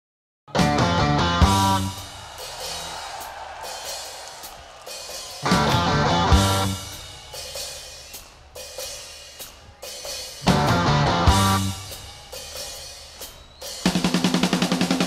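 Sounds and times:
electric guitar and bass: 0.6s - 2.0s, 5.5s - 6.8s, 10.5s - 11.8s
rock drums and cymbals: 0.6s - 15.0s.

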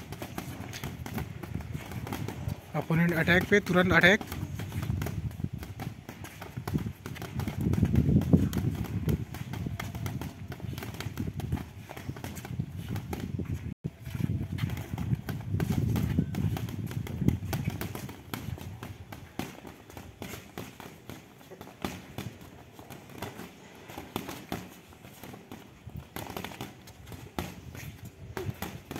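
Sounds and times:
boxing gloves thudding: 0.0s - 13.4s, 14.6s - 28.9s
shoes shuffling on paving stones: 0.0s - 28.9s.

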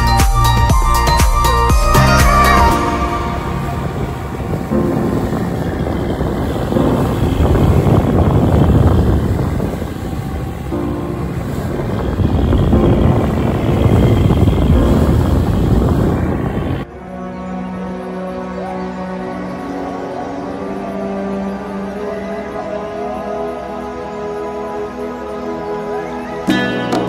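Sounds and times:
wind on microphone: 0.0s - 16.9s
boat engine running: 0.1s - 27.0s.

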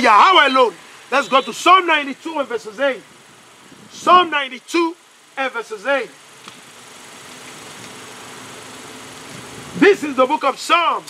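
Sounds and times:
man speaking: 0.0s - 3.1s, 3.9s - 6.2s, 9.8s - 11.0s
low engine hum: 0.0s - 10.7s.

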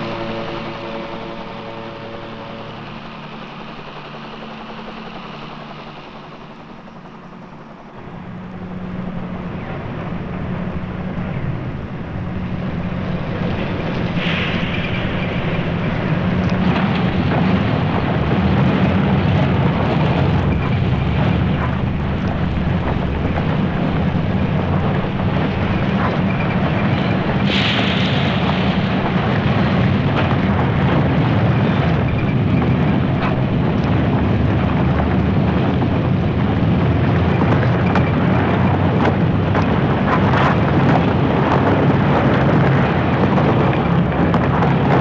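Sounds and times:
heavy tracked vehicle rumbling: 0.0s - 45.0s
music: 0.0s - 45.0s
steel tracks grinding: 0.0s - 45.0s
tread links clanking: 0.0s - 45.0s.

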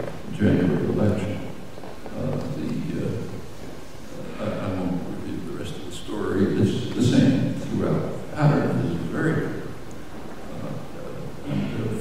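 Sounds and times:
room rumble and hiss: 0.0s - 12.0s
man speaking: 0.3s - 3.5s, 4.1s - 9.8s, 10.4s - 12.0s.

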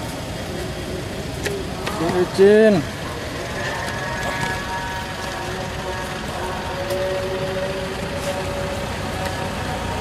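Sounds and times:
distant traffic: 0.0s - 10.0s.

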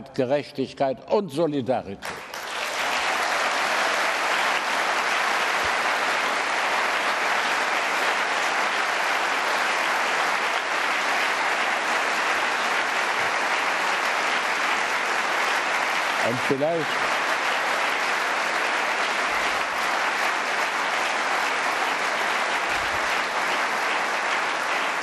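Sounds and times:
audience applauding: 2.0s - 25.0s.

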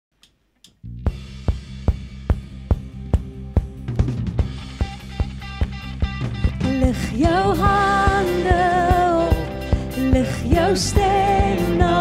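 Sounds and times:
sustained bass and keyboard note: 0.8s - 6.7s
drum kit steady beat: 1.1s - 12.0s.

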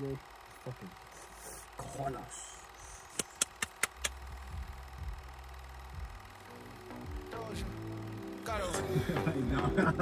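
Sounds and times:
low steady hum: 0.0s - 10.0s
sharp clicks: 3.0s - 4.5s
music: 4.1s - 10.0s.

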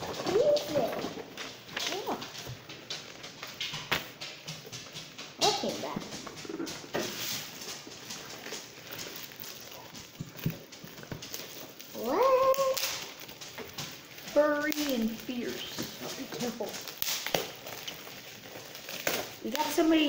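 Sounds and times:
bubble wrap crackling: 0.0s - 4.7s, 5.3s - 20.0s.

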